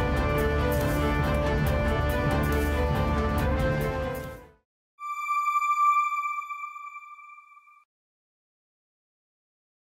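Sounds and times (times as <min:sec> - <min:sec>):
background music: 0:00.0 - 0:07.7
electronic ping tone: 0:05.0 - 0:07.8.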